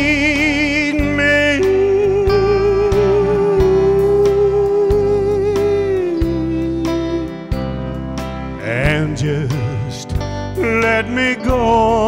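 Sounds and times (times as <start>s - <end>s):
live country band playing: 0.0s - 12.0s.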